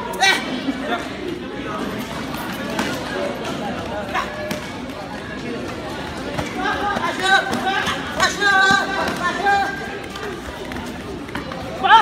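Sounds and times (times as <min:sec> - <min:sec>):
people shouting: 0:06.6 - 0:09.9.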